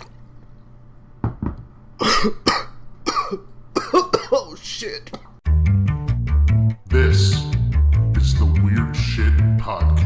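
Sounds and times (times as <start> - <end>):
person coughing hard: 2.0 - 4.6.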